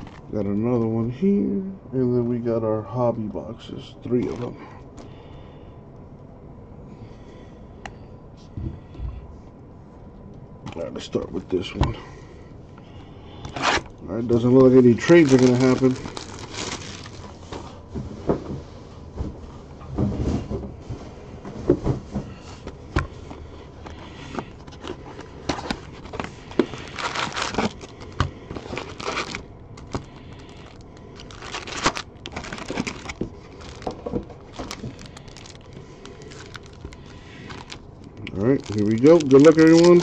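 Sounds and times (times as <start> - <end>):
foil packs rustling and tearing: 0.0 - 0.4, 13.3 - 17.8, 22.6 - 40.0.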